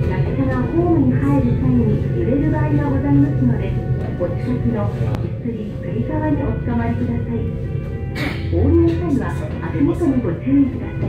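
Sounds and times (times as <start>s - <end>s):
background music: 0.0s - 11.0s
steady low hum: 0.0s - 11.0s
woman speaking over loudspeaker: 0.0s - 11.0s.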